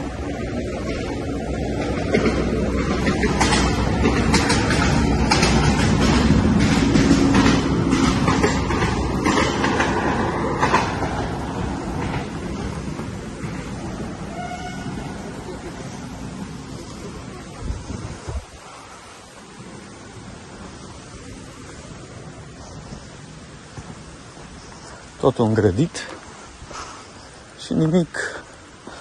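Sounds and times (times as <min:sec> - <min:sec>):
train rumble: 0:00.0 - 0:29.0
rapid clicking and clatter: 0:01.9 - 0:10.0.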